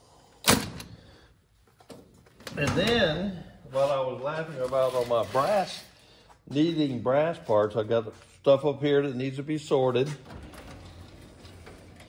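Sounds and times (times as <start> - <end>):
metal drawer sliding open: 10.1 - 12.0.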